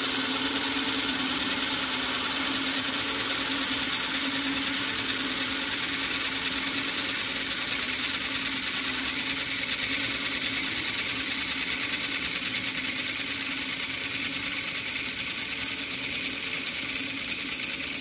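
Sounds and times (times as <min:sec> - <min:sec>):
milling machine drilling metal: 0:00.0 - 0:18.0.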